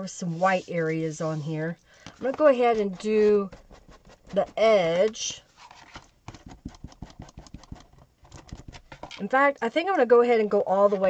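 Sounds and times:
light rapid tapping on cardboard: 6.2s - 9.1s.

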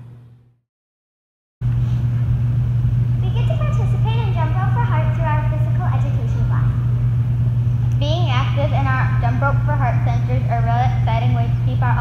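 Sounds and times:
loud low hum with rumble: 0.0s - 0.6s, 1.6s - 12.0s.

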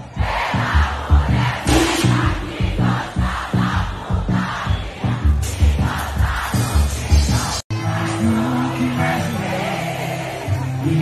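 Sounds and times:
crowd singing and shouting: 0.0s - 11.0s
steady bass beat: 0.2s - 7.6s.

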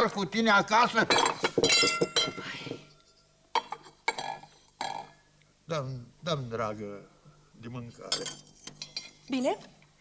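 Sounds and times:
dinner plates clinking: 1.0s - 5.2s, 8.0s - 9.6s.

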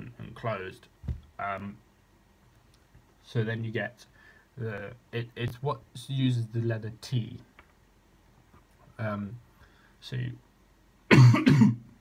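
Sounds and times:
man coughing: 11.1s - 11.9s.

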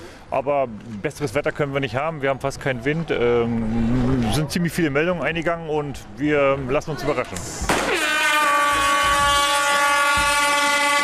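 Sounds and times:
long horn blast: 7.8s - 11.0s.

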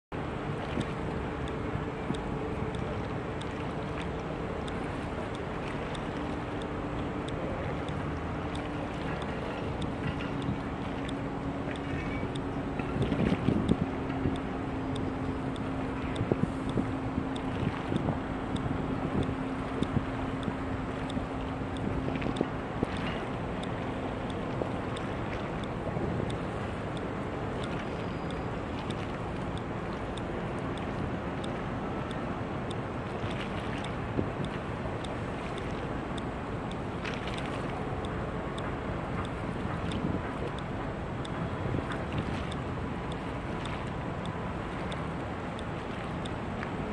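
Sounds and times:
low ship engine hum: 0.1s - 46.9s
wind on microphone: 0.2s - 46.9s.

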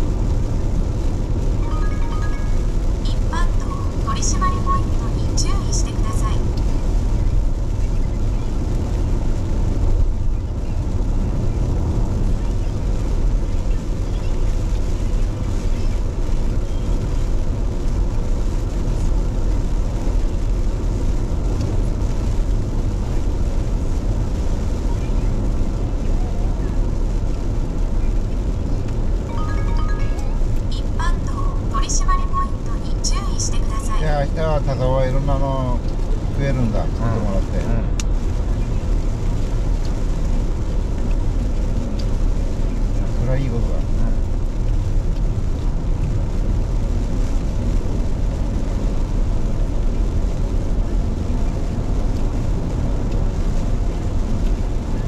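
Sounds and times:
tyre hiss on wet road: 33.5s - 55.0s.

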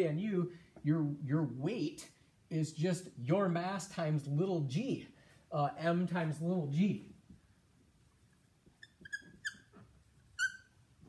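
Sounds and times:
marker squeaking on whiteboard: 8.6s - 11.0s.

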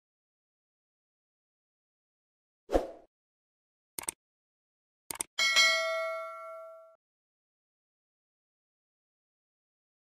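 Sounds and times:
mouse double-click: 5.1s - 5.3s
bright bell ding: 5.4s - 7.0s.

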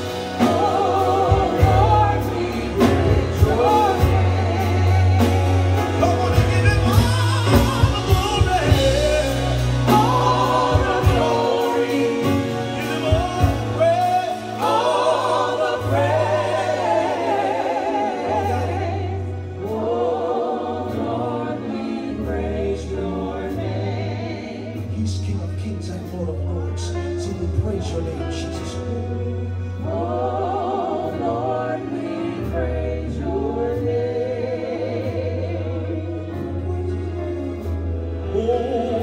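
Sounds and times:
drum kit: 0.0s - 26.2s
keyboard: 0.0s - 39.0s
sustained bass notes: 0.0s - 39.0s.

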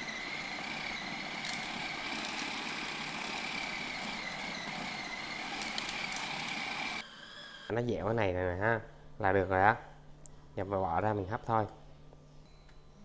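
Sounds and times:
food processor motor whining: 0.0s - 7.7s.

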